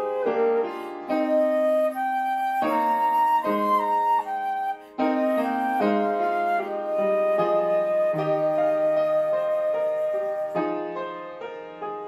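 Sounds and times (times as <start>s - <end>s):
lower accompaniment: 0.0s - 10.8s
flute playing slow melody: 0.0s - 10.9s.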